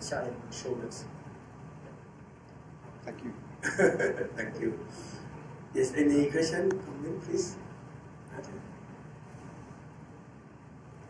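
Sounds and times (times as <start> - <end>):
faint low hum: 0.0 - 11.0.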